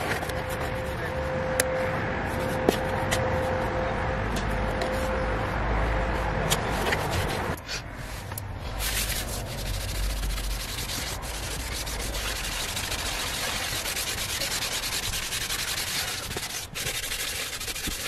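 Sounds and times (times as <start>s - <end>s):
wet wipe rubbing leather seat: 6.7s - 18.0s.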